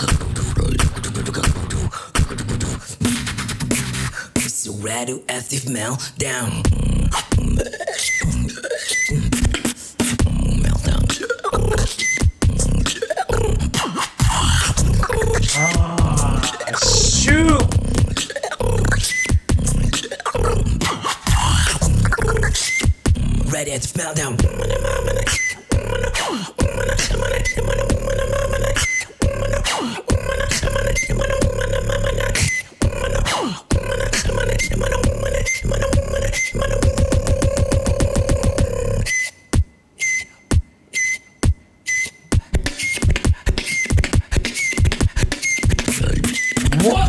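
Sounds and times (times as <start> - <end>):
beatboxing vocal kicks and snares: 0.0 - 4.7, 6.4 - 39.7, 42.3 - 47.0
hummed bass tone: 14.5 - 19.0.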